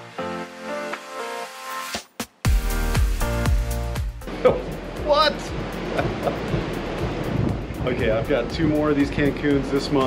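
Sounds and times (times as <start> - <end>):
background music: 0.0 - 10.0
ocean surf: 4.2 - 10.0
wind on the microphone: 5.5 - 9.7.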